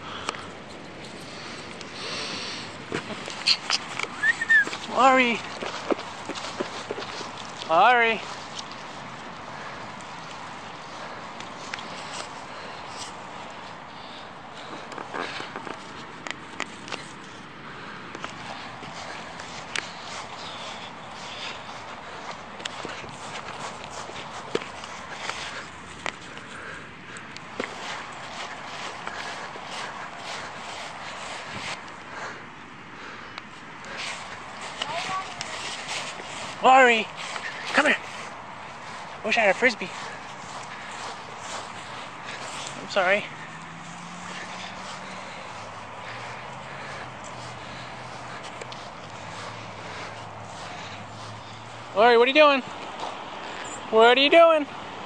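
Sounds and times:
outdoor hiss: 1.2s - 15.6s.

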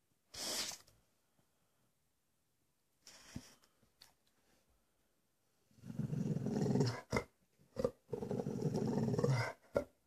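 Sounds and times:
dog growling: 5.8s - 9.9s.

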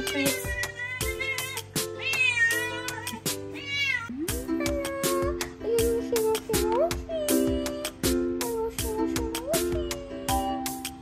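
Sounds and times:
music with steady beat: 0.0s - 11.0s
cat meowing: 0.1s - 5.3s.

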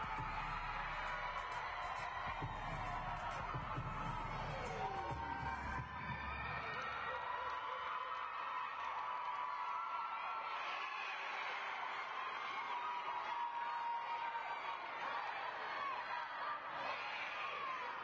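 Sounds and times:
crowd cheering and calling out: 0.0s - 18.0s
whoops: 0.0s - 18.0s.

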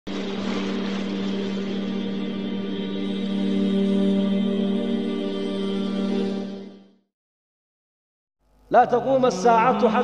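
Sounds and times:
low drone with overtones: 0.1s - 6.7s.

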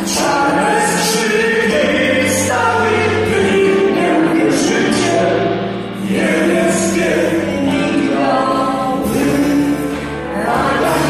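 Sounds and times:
drum kit: 0.0s - 11.0s
keyboards: 0.0s - 11.0s
voices singing together: 0.0s - 11.0s.

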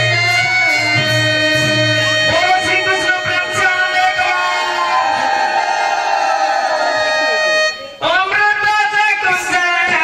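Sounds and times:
steady instrumental drone: 0.0s - 8.1s.

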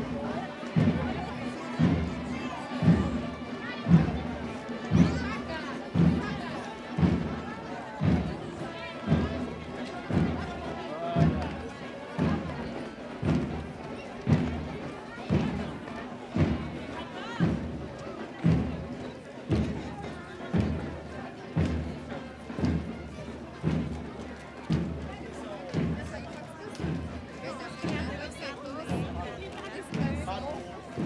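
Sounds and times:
chatter of voices: 0.0s - 31.0s
marching bass drum beating: 0.0s - 31.0s.

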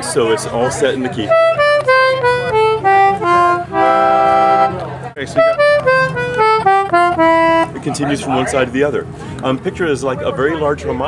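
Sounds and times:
concertina playing: 1.1s - 8.0s.

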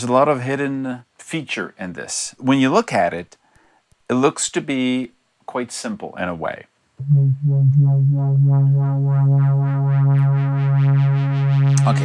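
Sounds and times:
pulsing synthesizer pad note: 7.0s - 12.0s.

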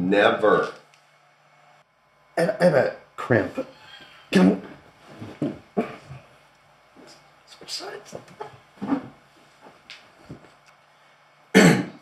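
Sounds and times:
man coughing: 5.7s - 6.2s, 11.6s - 12.0s.

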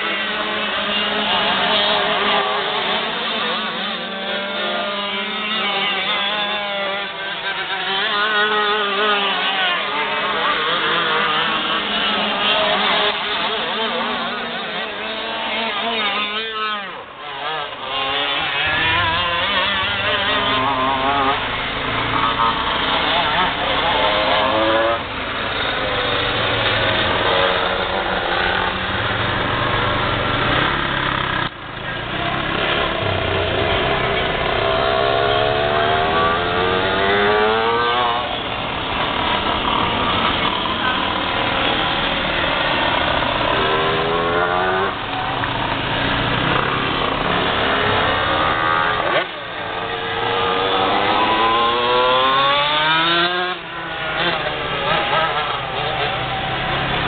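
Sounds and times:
kart engines racing: 0.0s - 57.0s.

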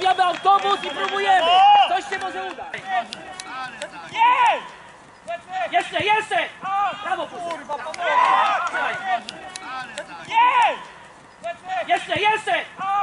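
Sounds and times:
voices shouting outdoors: 0.0s - 13.0s.

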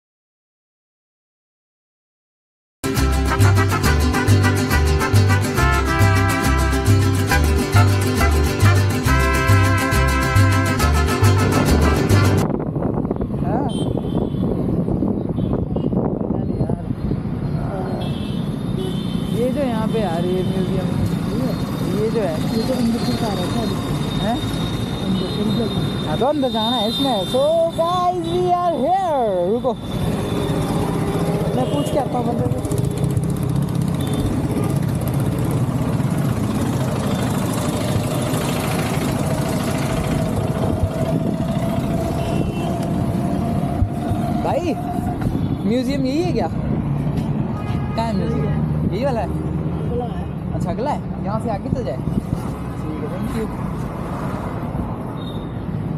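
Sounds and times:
road traffic noise: 2.8s - 55.9s
wind noise: 7.1s - 17.8s, 39.2s - 47.8s
motorcycle engine running: 30.1s - 44.6s.

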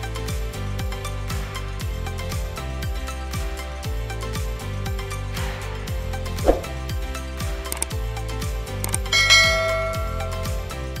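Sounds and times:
background music with deep drum beat: 0.0s - 11.0s
bright bell-like chime: 9.1s - 10.7s.

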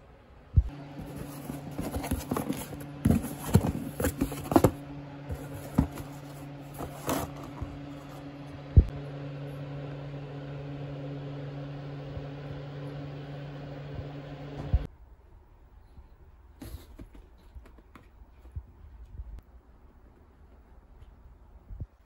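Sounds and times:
low hum: 0.0s - 16.5s
cardboard rustling and scraping: 0.9s - 8.3s.

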